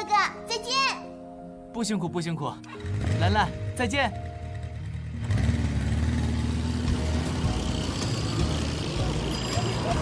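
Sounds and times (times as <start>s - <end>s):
traffic rumble: 2.8s - 10.0s
scooter riding: 4.4s - 10.0s.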